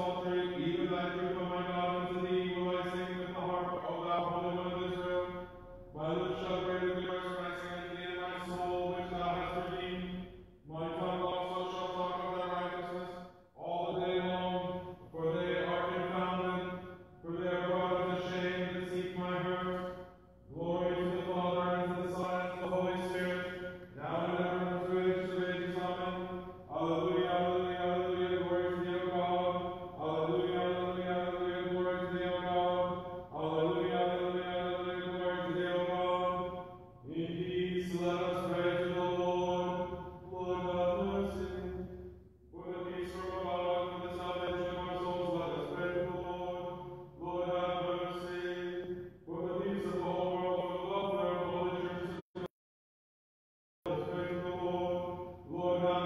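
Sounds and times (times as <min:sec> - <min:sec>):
person chanting: 0:00.0 - 0:52.5, 0:53.9 - 0:56.0.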